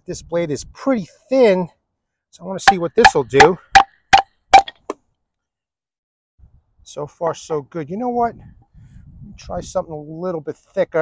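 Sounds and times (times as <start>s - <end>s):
knife chopping wooden stick: 2.6s - 4.9s.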